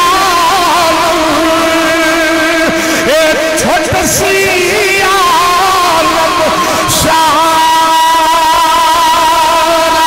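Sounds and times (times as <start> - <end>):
man singing through loudspeakers: 0.0 - 10.0.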